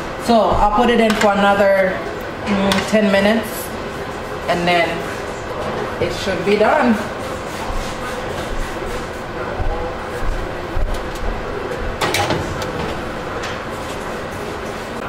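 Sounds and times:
oven rack sliding on runners: 12.0 - 14.9.

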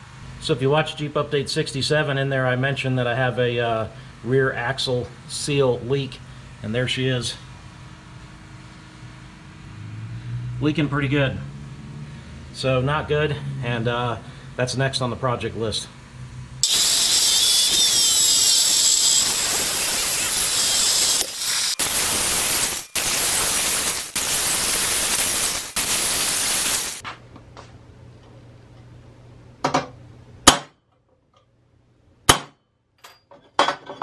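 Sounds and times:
angle grinder cutting steel: 16.6 - 27.0
metal clinks and knocks: 33.0 - 34.0.

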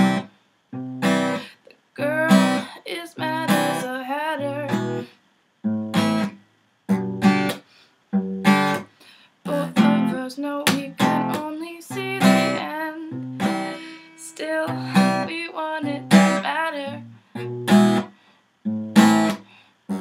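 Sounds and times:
acoustic guitar chords strummed: 0.0 - 8.9, 9.5 - 20.0.

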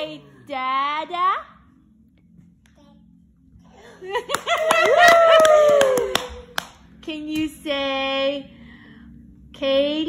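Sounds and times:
hands clapping: 4.2 - 6.9
people cheering: 4.6 - 6.4.

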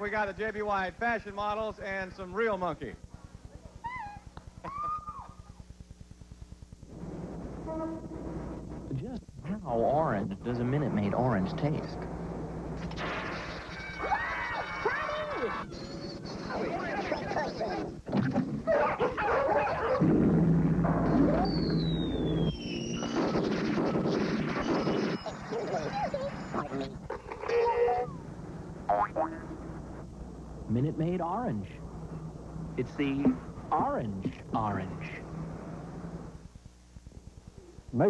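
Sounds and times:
voices: 14.1 - 18.0, 25.1 - 30.0, 30.7 - 35.4
sound effects: 20.0 - 27.0
falling whistle-like glide: 21.3 - 23.7.

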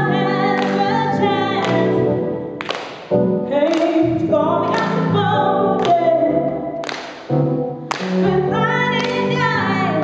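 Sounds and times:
woman singing into a microphone: 0.0 - 2.2, 3.5 - 6.8, 8.2 - 10.0
musical accompaniment: 0.0 - 10.0.

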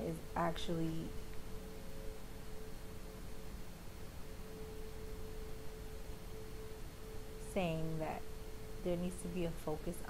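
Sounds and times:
low background hiss: 0.0 - 10.0
steady pure tone: 0.0 - 10.0.

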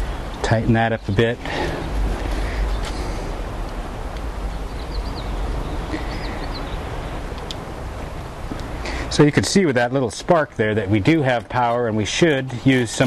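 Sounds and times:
low rumble: 1.1 - 8.6.

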